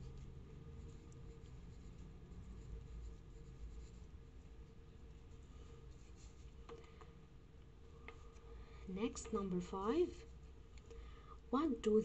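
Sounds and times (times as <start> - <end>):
pen scratching on paper: 0.0 - 4.4
low steady room hum: 0.0 - 12.0.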